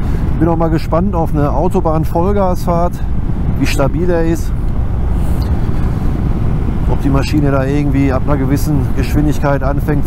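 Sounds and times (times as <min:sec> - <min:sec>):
motorcycle road and engine noise: 0:00.0 - 0:10.0
wind rush on microphone: 0:00.0 - 0:10.0.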